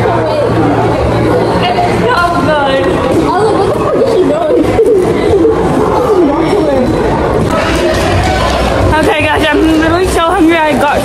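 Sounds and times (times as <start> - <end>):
young voices chattering: 0.0 - 11.0.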